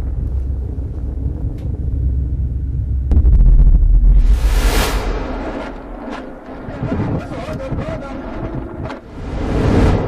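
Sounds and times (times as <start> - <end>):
low steady rumble: 0.0 - 9.3
wind buffeting microphone: 5.3 - 10.0.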